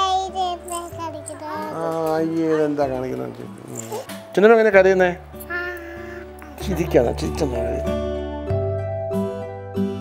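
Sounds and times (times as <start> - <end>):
girl singing sing-song: 0.0 - 1.8
soft background music: 0.0 - 10.0.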